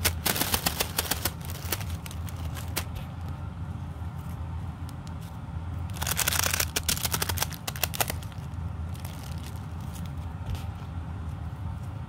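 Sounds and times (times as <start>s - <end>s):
tissue-paper fan crinkling: 0.0s - 12.0s.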